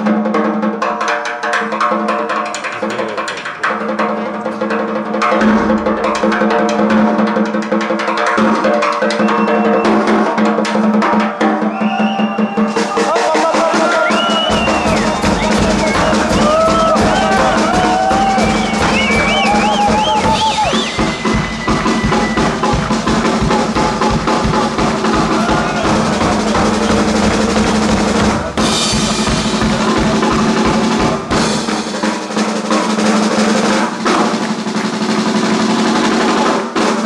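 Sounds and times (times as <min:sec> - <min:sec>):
drum kits playing: 0:00.0 - 0:37.0.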